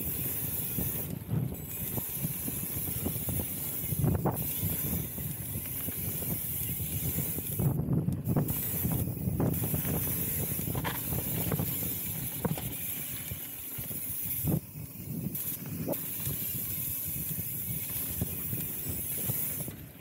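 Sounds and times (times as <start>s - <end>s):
bike clicks and knocks: 0.0s - 20.0s
bike tyres on dirt: 0.0s - 20.0s
wind over microphone: 0.0s - 20.0s.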